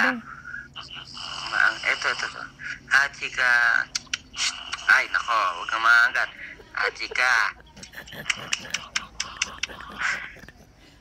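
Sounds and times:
dog making croaky sounds: 0:07.7 - 0:10.6.

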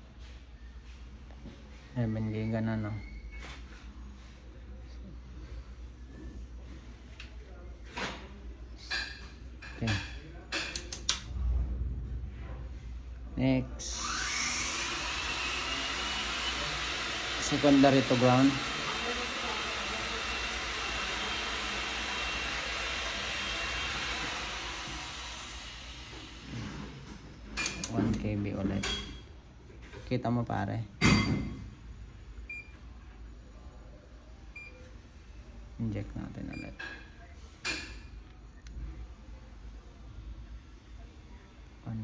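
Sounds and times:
loud thump: 0:11.2 - 0:12.8.

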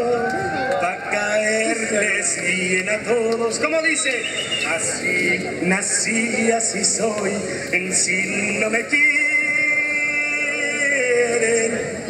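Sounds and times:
man singing long note with vibrato: 0:00.0 - 0:12.0.

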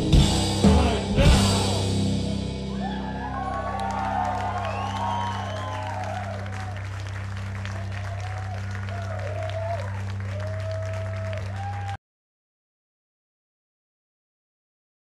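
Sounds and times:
low amplifier hum: 0:00.0 - 0:11.9
audience applauding and cheering: 0:02.7 - 0:12.0.

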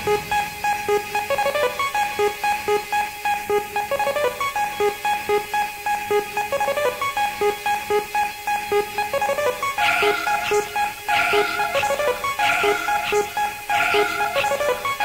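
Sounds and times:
rave music with plucked synth riff: 0:07.7 - 0:15.0.

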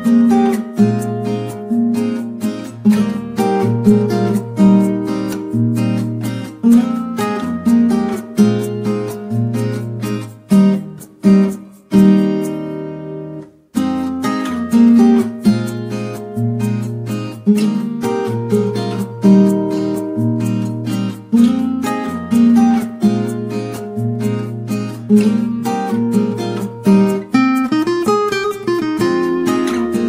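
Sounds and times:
strummed acoustic guitar: 0:00.0 - 0:30.0.

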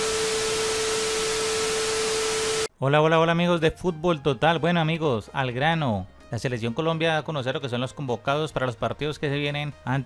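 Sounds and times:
television static hiss: 0:00.0 - 0:02.7.

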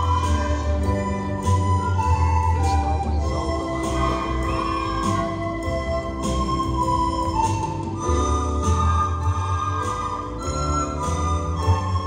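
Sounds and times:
children playing recorders: 0:00.0 - 0:12.0
low bass accompaniment: 0:00.0 - 0:12.0.

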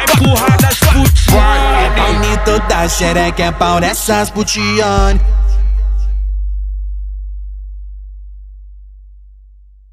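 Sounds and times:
deep sub-bass note: 0:01.2 - 0:09.9.

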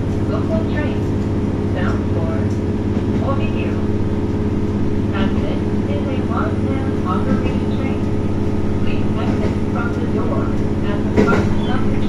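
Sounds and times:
railcar engine humming: 0:00.0 - 0:12.0
voices: 0:00.2 - 0:04.0, 0:05.0 - 0:12.0.

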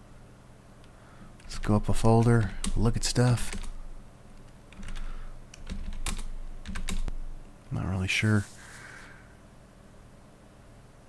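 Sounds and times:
typing on computer keyboard: 0:02.2 - 0:03.8, 0:04.7 - 0:07.1.

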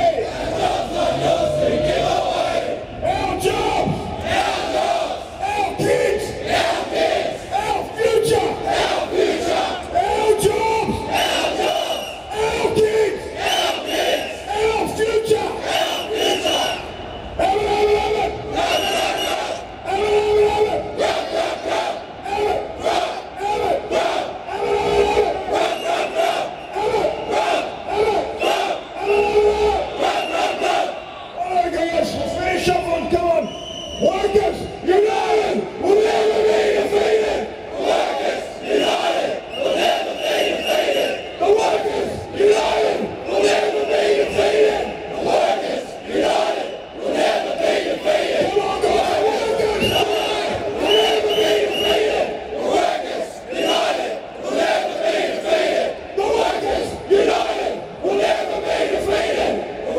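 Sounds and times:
men chanting together: 0:00.0 - 0:12.0, 0:34.9 - 0:59.9.

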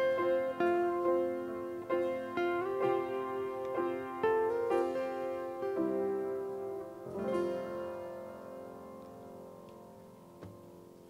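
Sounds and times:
piano and acoustic guitar chord: 0:00.0 - 0:11.0.

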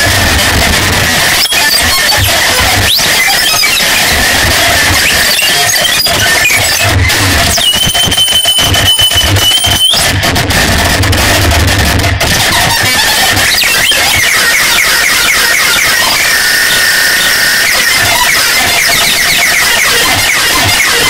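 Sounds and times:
distorted electronic noise: 0:00.0 - 0:21.0
steady high whine: 0:13.3 - 0:21.0
wavering whine: 0:13.3 - 0:21.0.

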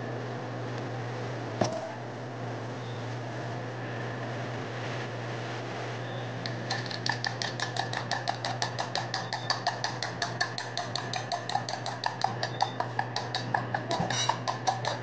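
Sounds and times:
kitchen exhaust hood hum: 0:00.0 - 0:15.0
metal spoon clinking steel bowl: 0:06.8 - 0:15.0.

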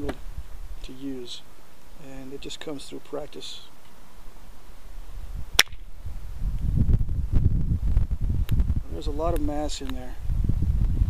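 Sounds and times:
sharp click: 0:05.6 - 0:05.9.

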